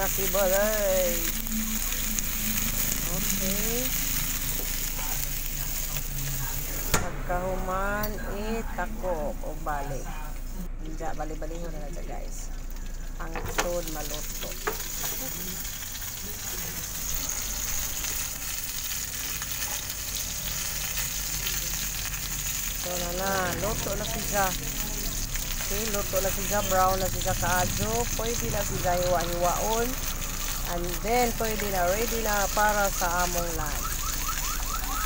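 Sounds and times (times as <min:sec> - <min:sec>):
meat sizzling in a frying pan: 0:00.0 - 0:07.1, 0:11.2 - 0:35.0.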